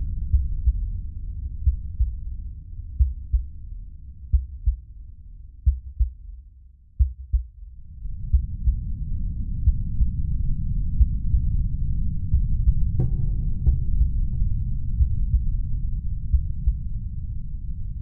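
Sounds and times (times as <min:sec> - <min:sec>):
deep rumbling drone: 0:00.0 - 0:18.0
heartbeat-like low thumps: 0:00.0 - 0:18.0.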